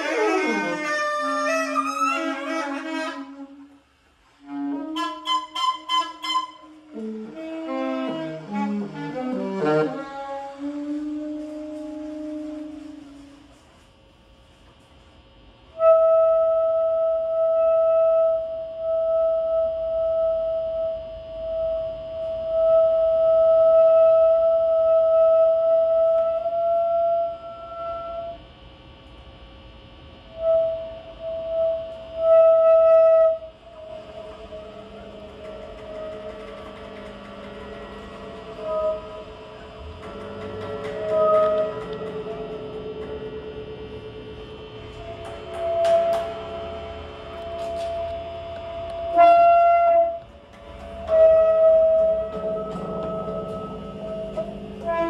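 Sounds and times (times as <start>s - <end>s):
alto saxophone notes: 0.0s - 14.0s, 15.7s - 28.6s, 30.2s - 55.0s.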